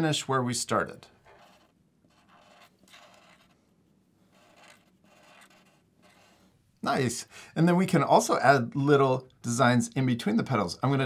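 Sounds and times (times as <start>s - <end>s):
marker scratching on paper: 1.2s - 6.6s.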